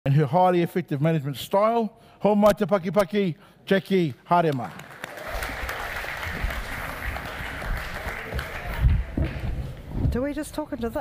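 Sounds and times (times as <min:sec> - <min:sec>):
audience applauding: 0:04.5 - 0:09.4.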